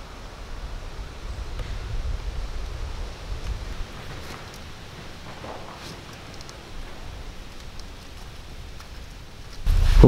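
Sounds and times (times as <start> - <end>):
wind rumble on microphone: 0.2 - 4.8, 8.4 - 10.0.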